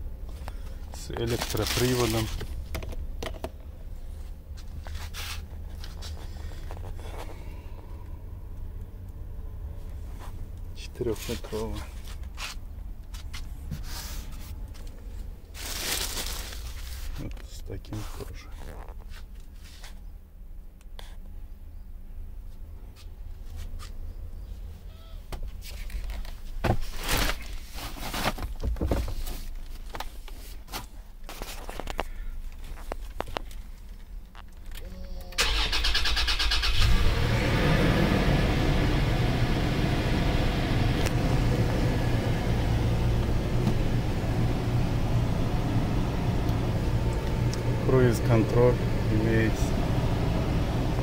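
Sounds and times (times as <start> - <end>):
car engine idling: 35.4 - 51.0.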